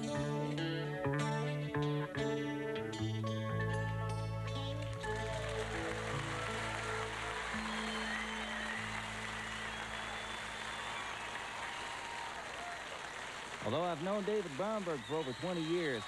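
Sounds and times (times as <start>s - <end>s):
audience applauding: 4.7s - 16.0s
whistling in crowd: 6.2s - 13.4s, 14.6s - 16.0s.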